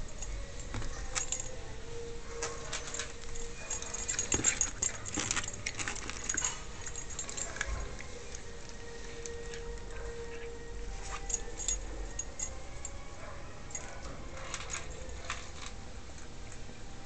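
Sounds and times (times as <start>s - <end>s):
metallic collar jingling: 0.0s - 15.7s.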